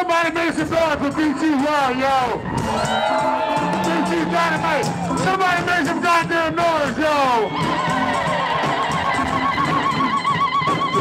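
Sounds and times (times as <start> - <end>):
live band music: 0.0 - 11.0.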